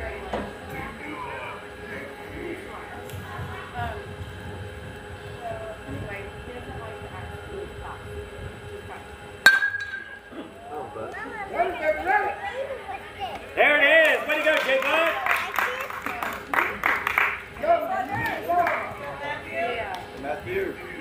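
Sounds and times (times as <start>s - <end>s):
background chatter: 0.0s - 21.0s
metal bat hitting ball: 9.4s - 10.2s
spectators shouting and cheering: 10.2s - 19.8s.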